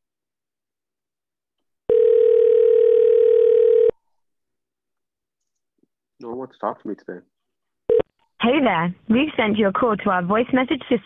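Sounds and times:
phone ringback tone: 1.9s - 4.0s.

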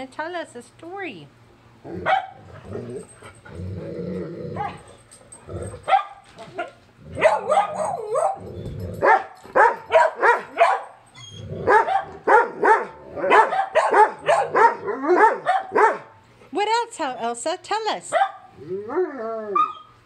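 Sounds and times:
dog yowling and whining: 4.4s - 5.0s, 5.6s - 16.1s, 18.2s - 20.0s.

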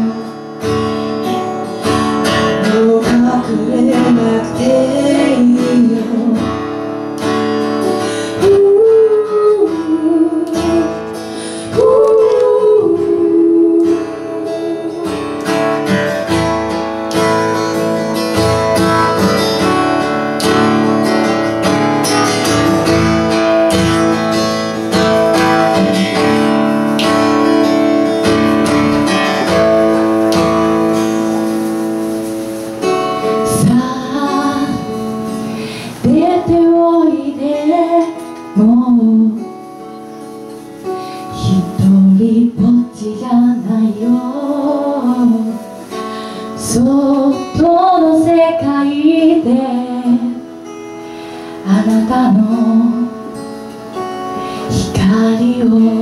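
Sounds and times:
woman singing: 0.0s - 17.2s, 33.1s - 39.9s, 41.2s - 50.7s, 51.6s - 53.7s, 54.4s - 56.0s
acoustic guitar strumming: 0.0s - 56.0s.

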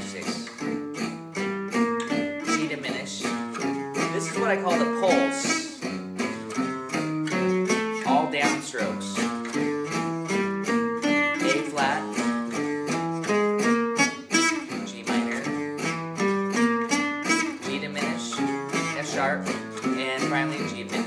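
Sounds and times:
acoustic guitar picking arpeggios: 0.0s - 21.0s
rhythm guitar chords backing: 0.0s - 21.0s.

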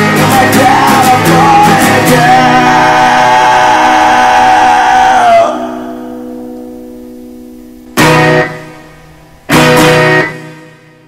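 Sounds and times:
rock band holding a loud note: 0.0s - 11.0s
guitar chord ringing: 4.8s - 11.0s.

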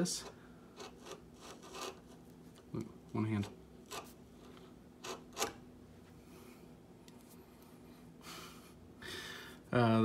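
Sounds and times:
chisel shaving wood: 0.8s - 2.2s.

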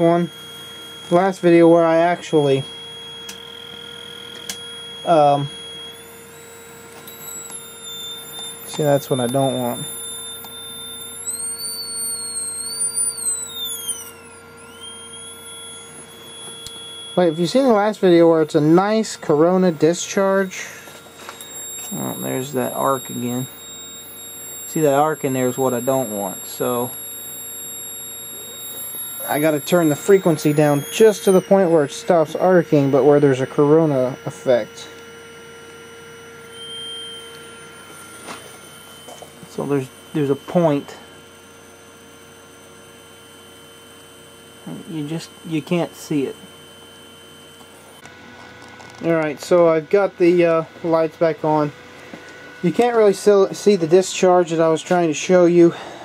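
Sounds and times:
faint steady hum: 0.0s - 56.0s
high-pitched transformer whine: 0.0s - 56.0s.

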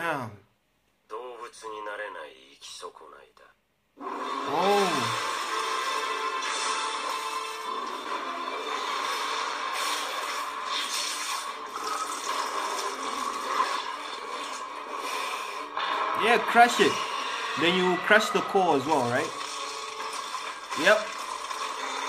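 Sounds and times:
background music: 4.0s - 22.0s.

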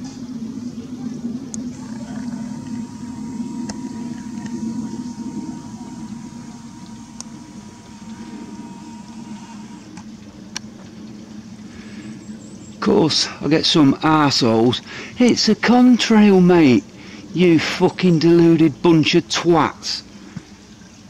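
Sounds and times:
low engine rumble: 0.2s - 10.5s
faint high steady tone: 1.6s - 9.9s.

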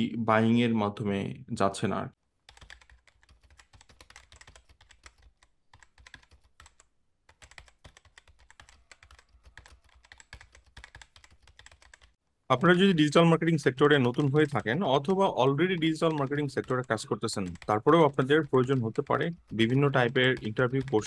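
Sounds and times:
fast keyboard typing: 2.5s - 21.0s.

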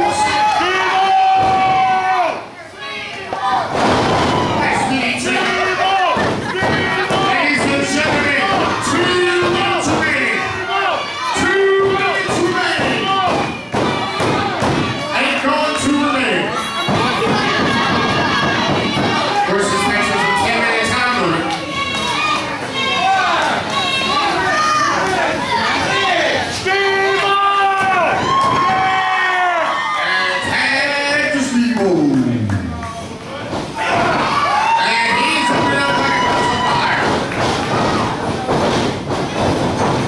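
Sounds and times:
spectators shouting: 0.0s - 31.5s, 33.3s - 40.0s.

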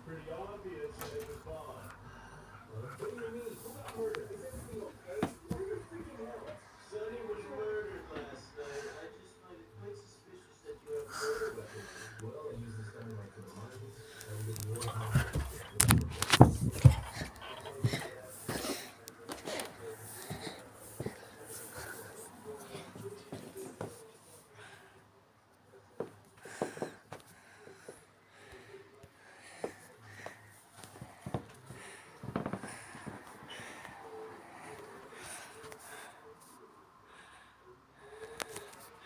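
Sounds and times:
indistinct background speech: 0.0s - 39.0s
wheezy breathing: 10.9s - 25.0s, 26.4s - 39.0s.

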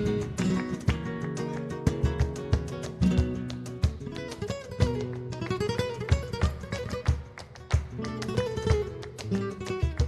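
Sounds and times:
flamenco guitar plucked notes: 0.0s - 10.0s.

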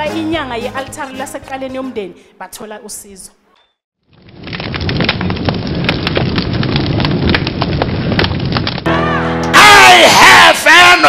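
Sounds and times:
fire crackling: 4.0s - 8.9s.

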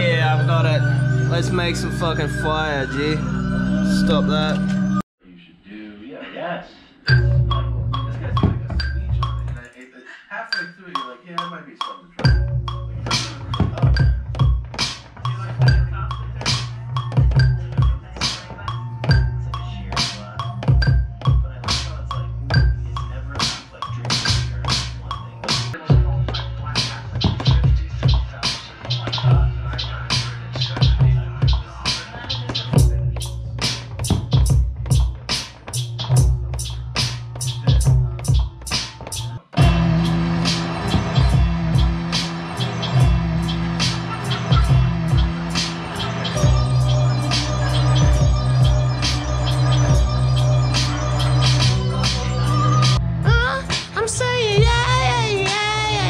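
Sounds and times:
deep bass: 0.0s - 5.0s, 7.1s - 9.6s, 12.2s - 38.6s, 39.2s - 56.0s
held chords: 0.0s - 5.0s, 39.6s - 56.0s
hip hop beat: 0.0s - 5.0s, 7.1s - 56.0s
drum hits: 12.2s - 18.4s, 32.5s - 49.2s.

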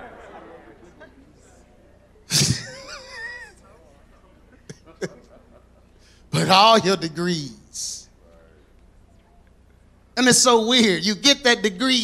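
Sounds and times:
person laughing: 2.3s - 3.6s, 4.6s - 5.6s, 6.4s - 7.0s.

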